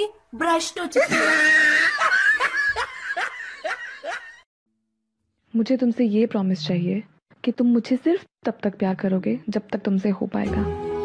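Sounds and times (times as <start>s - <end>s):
person laughing: 1.0s - 4.4s.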